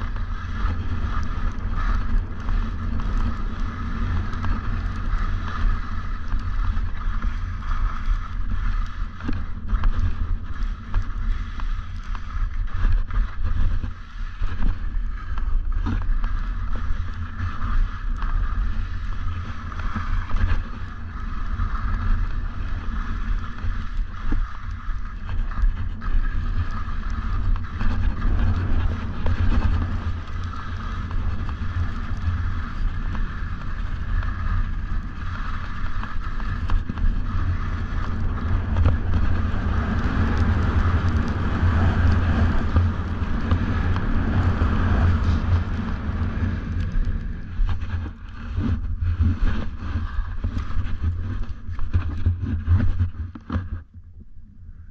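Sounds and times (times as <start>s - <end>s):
skis sliding on snow: 0.0s - 53.8s
wind buffeting microphone: 0.0s - 53.8s.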